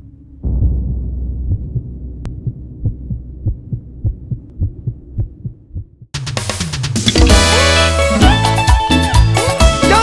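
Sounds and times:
low droning soundscape: 0:00.0 - 0:06.0
soft low thumps: 0:00.0 - 0:06.2.

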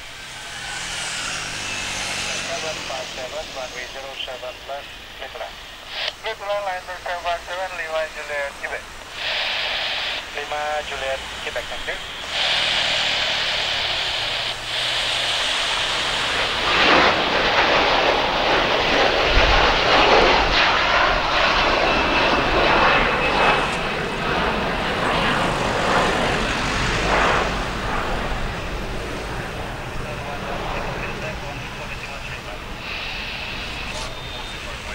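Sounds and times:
high jet engine whine: 0:00.0 - 0:34.9
jet airliner taking off: 0:00.0 - 0:34.9.

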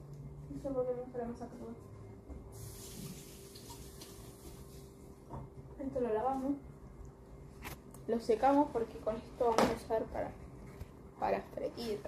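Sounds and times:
tap water running into sink: 0:02.6 - 0:04.2.

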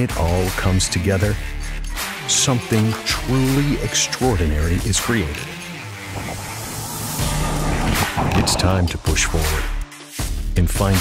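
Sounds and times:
music with sustained bass: 0:00.0 - 0:10.4.

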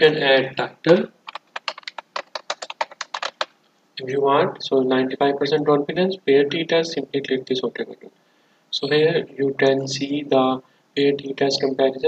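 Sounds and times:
computer keyboard typing: 0:01.2 - 0:03.5.

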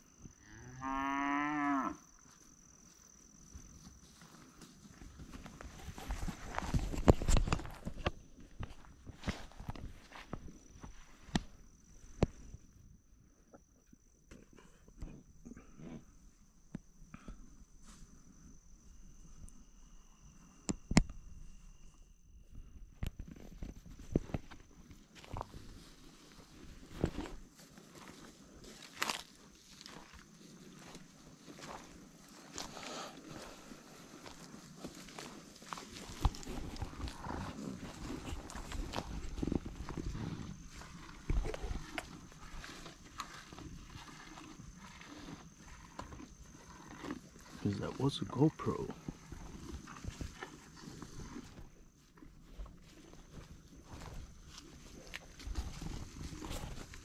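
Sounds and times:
high insect tone: 0:00.0 - 0:15.4, 0:16.0 - 0:25.5
cow mooing: 0:00.4 - 0:02.0
crunching steps on dry ground: 0:02.2 - 0:11.7, 0:24.0 - 0:46.2.

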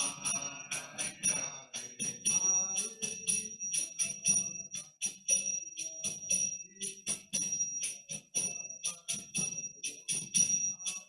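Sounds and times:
hand cymbals struck in rhythm: 0:00.0 - 0:11.0.

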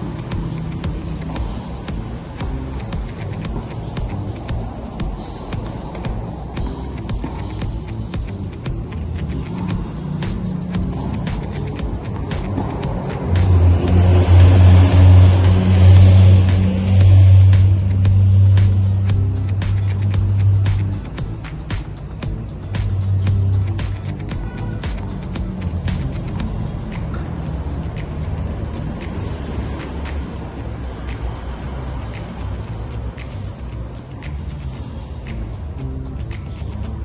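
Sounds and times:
background music: 0:00.0 - 0:37.0
vehicle engine passing: 0:00.0 - 0:37.0.

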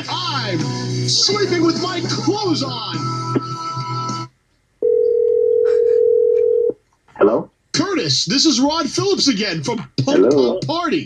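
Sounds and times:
pop-punk song over phone line: 0:00.0 - 0:04.3
telephone tone: 0:04.8 - 0:06.8.

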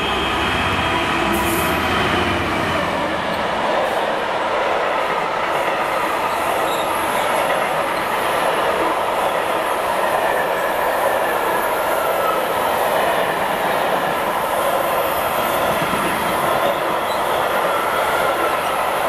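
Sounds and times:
train wheels rumbling on rail: 0:00.0 - 0:19.0.

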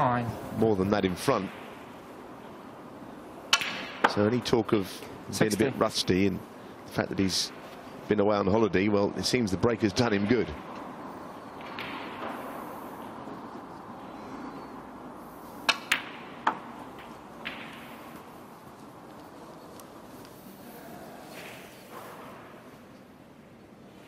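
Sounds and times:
snooker balls clicking: 0:10.2 - 0:14.0, 0:14.9 - 0:20.4.

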